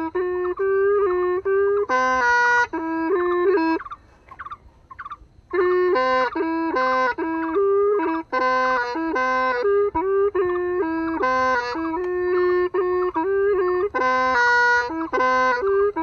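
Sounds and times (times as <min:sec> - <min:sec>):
reedy bamboo pipe melody: 0:00.0 - 0:16.0.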